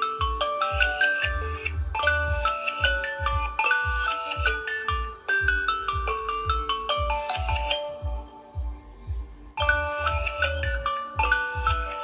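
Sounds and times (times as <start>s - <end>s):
phone ringtone marimba melody: 0.0s - 12.0s.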